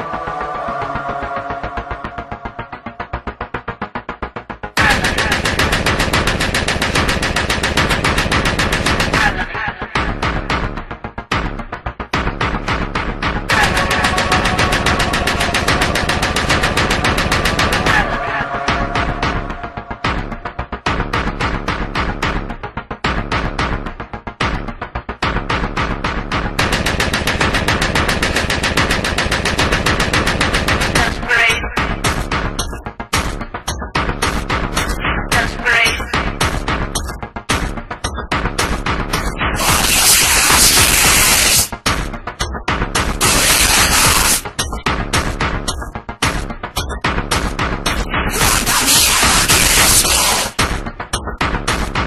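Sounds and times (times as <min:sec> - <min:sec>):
dark electronic track: 0:00.0 - 0:52.0
steady bass: 0:10.2 - 0:26.6
electronic drum roll: 0:13.5 - 0:21.7.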